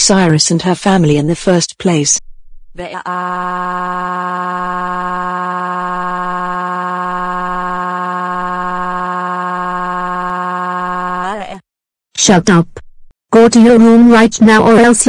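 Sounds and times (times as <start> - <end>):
synthetic voice wailing: 2.8 - 11.6.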